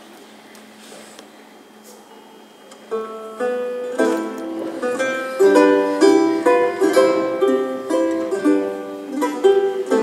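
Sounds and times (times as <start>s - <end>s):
steady low hum: 0.0s - 10.0s
plucked string instrument: 2.8s - 10.0s.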